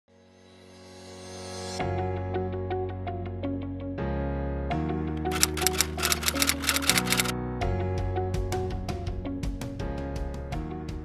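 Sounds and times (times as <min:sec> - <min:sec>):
background music: 0:00.6 - 0:11.0
typewriter clicking: 0:05.3 - 0:07.3.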